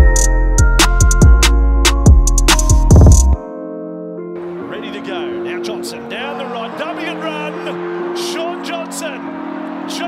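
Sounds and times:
music with sustained chords: 0.0 - 10.0
voice over music: 4.5 - 10.0.

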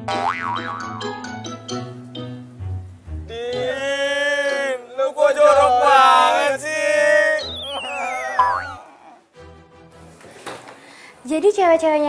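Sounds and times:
cartoon boing sound effect: 0.1 - 1.2, 7.4 - 8.9
comic background music: 7.0 - 10.1.

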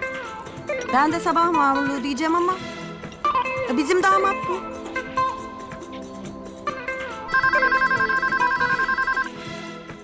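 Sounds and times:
phone ringtone warbling trill: 7.3 - 9.3.

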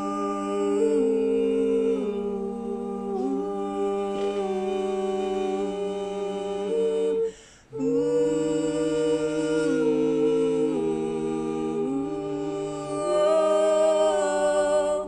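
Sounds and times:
men humming in harmony: 0.0 - 15.0.

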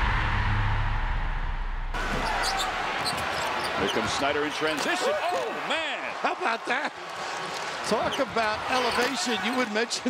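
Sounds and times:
low boom and whoosh: 0.0 - 2.1
crowd noise: 0.0 - 10.0.

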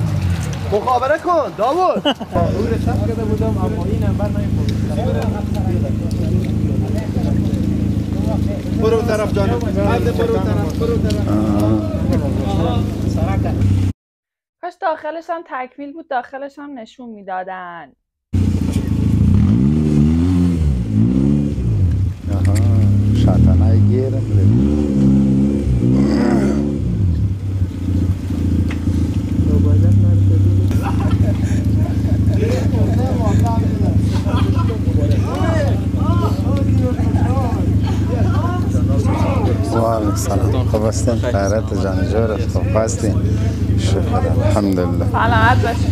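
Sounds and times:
car engine revving: 0.0 - 13.9, 18.4 - 45.9
people talking: 0.6 - 13.6, 14.6 - 17.9, 22.3 - 24.8, 29.4 - 45.9.

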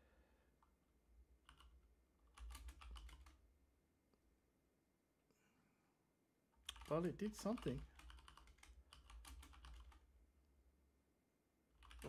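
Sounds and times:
typing on computer keyboard: 1.4 - 3.4, 6.7 - 10.1, 11.8 - 12.0.

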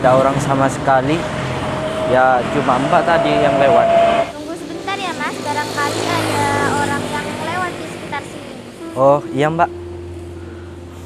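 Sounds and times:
vehicle engine passing: 0.0 - 11.0.

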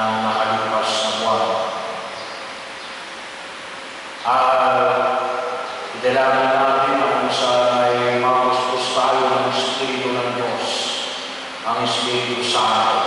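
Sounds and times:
man chanting into a microphone: 0.0 - 1.8, 4.3 - 13.0.

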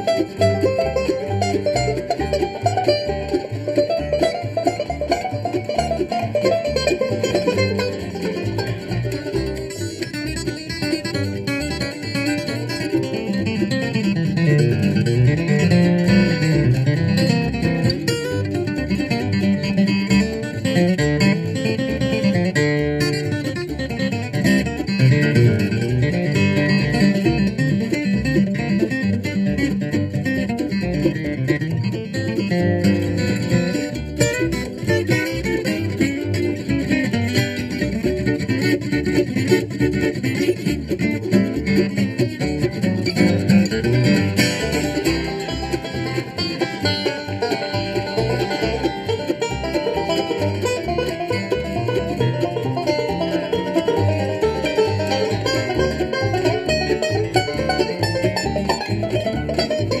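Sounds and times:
banjo picking: 0.0 - 60.0
guitar picking: 0.0 - 60.0
walking bass line: 0.0 - 60.0.

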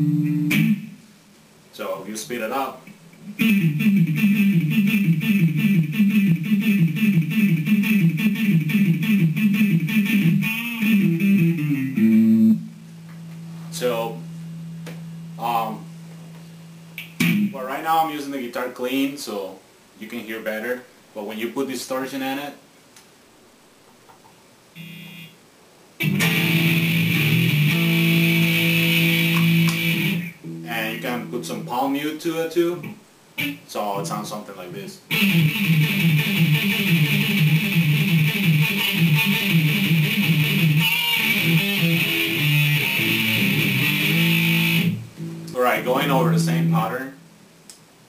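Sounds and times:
short buzzing tone: 0.0 - 0.9, 24.8 - 25.4
distorted electric guitar: 0.0 - 1.0, 3.2 - 17.7, 26.0 - 31.6, 35.1 - 47.1.

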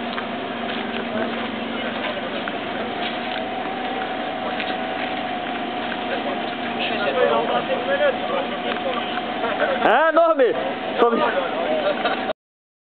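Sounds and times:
steady hum: 0.0 - 12.2
indistinct group chatter: 0.0 - 12.3.

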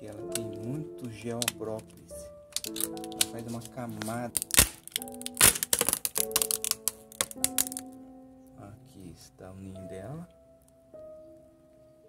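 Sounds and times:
wax seal cracking: 0.0 - 8.0
background music with held notes: 0.0 - 12.0.

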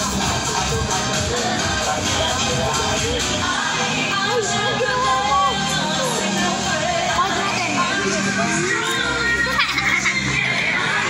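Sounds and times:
background music: 0.0 - 11.0
children chattering and calling: 0.0 - 11.0.

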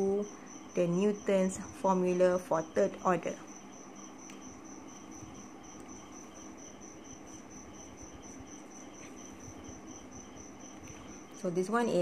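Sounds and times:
faint low hum: 0.0 - 12.0.

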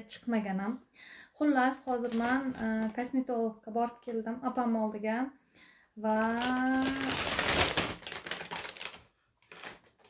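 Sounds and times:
plastic bag crinkling: 1.8 - 3.0, 6.1 - 10.0.

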